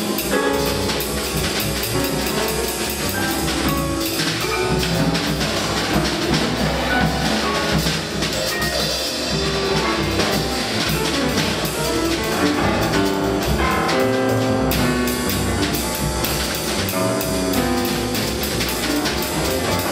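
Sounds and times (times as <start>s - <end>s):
drum kit with cymbal strokes: 0.0s - 19.9s
free jazz band improvising: 0.0s - 19.9s.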